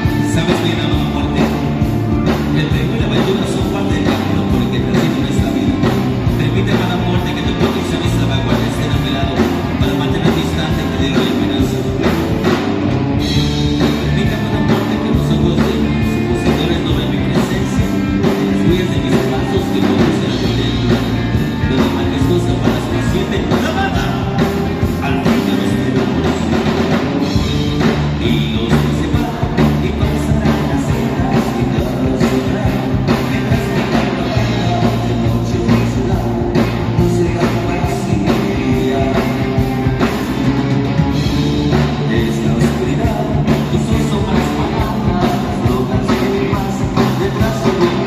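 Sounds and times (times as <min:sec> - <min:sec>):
rock band playing live: 0:00.0 - 0:48.0.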